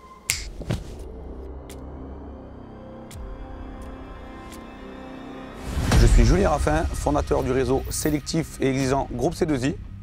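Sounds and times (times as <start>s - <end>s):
low sustained music tones: 0.0s - 10.0s.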